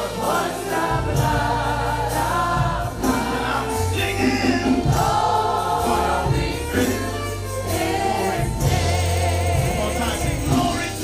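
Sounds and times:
drum kit: 0.0 - 11.0
electric keyboard: 0.0 - 11.0
voices singing a hymn: 0.0 - 11.0
sustained bass notes: 0.8 - 11.0.

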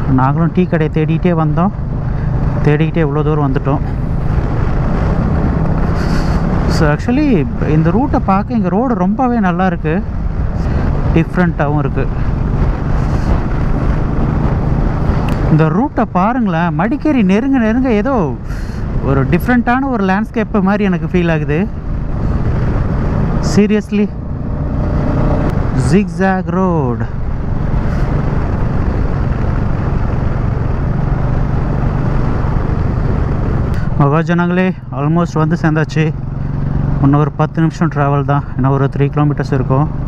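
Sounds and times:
wind rush on microphone: 0.0 - 37.0
motorcycle engine humming: 0.0 - 40.0
motorcycle engine running: 10.0 - 15.7.

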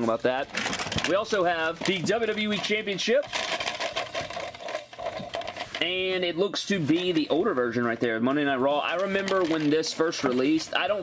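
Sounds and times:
spinning toy plate rattling: 0.6 - 6.2, 8.8 - 11.0.

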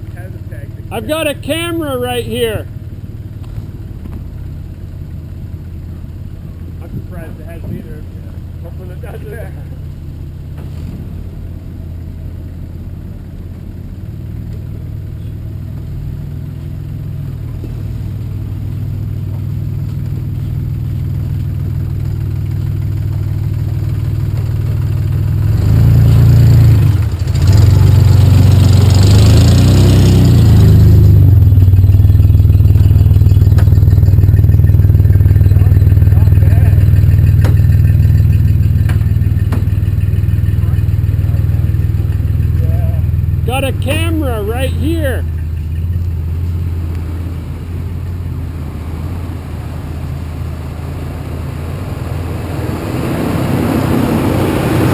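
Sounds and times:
car engine revving: 0.0 - 54.9.

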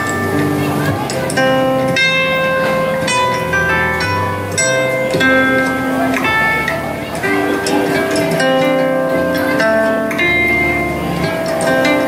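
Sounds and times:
zither melody: 0.0 - 12.0.

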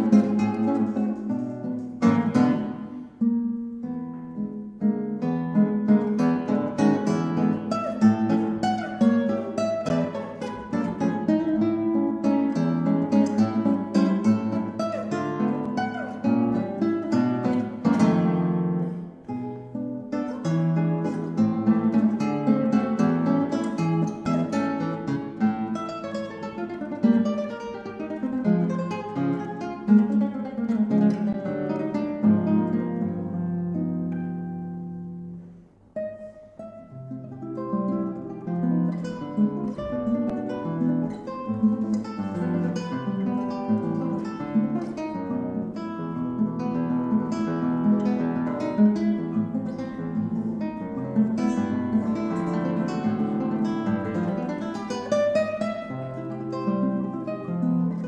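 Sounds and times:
classical guitar plucked notes: 0.0 - 58.0.

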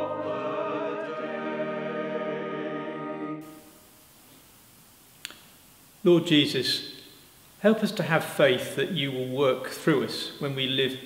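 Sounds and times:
choir singing church music: 0.0 - 3.7.

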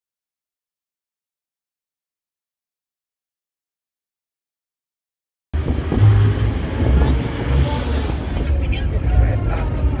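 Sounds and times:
road and wind noise: 5.6 - 10.0
faint voices: 6.5 - 10.0.

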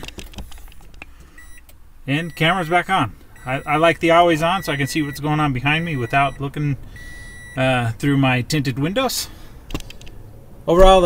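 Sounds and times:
faint electronic beep: 1.4 - 1.6, 3.4 - 7.6.

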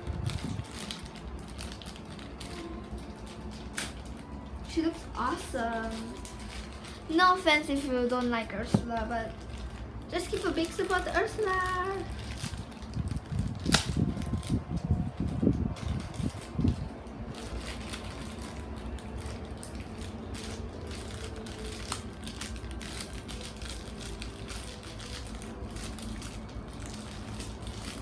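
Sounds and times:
low background hum: 0.0 - 28.0.

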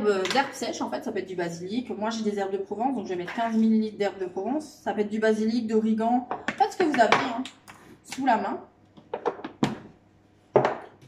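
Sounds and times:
container knocking on worktop: 9.1 - 9.9, 10.5 - 10.9.

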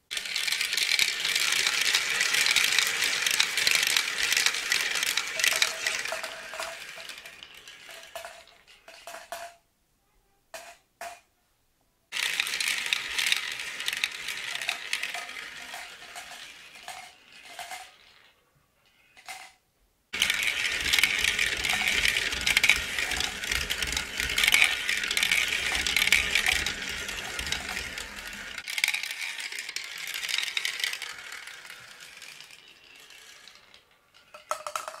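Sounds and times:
marbles rattling along track: 0.1 - 9.6, 10.6 - 11.2, 12.1 - 35.0.

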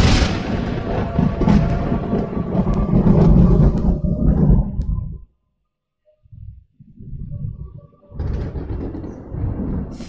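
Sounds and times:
low rumbling sound effect: 0.0 - 5.3, 6.3 - 10.0.

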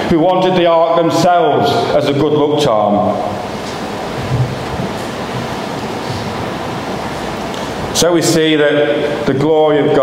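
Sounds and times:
steady rushing room noise: 0.0 - 10.0.

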